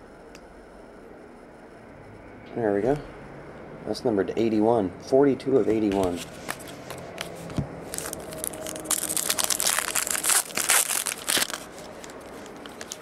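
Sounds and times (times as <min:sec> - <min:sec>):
wrapper crinkling and tearing: 0:06.5 - 0:13.0.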